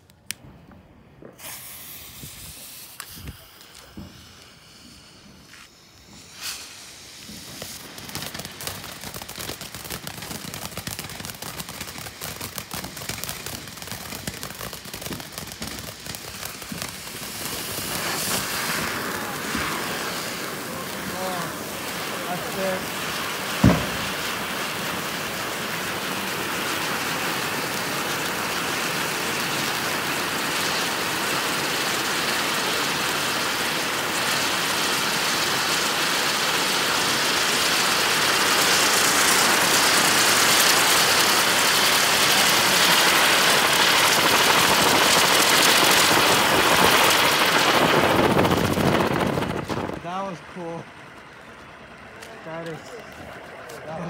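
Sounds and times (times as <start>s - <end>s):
firework spraying sparks hissing: 1.2s - 50.8s
sharp pop: 2.8s - 4.6s, 23.6s - 24.1s.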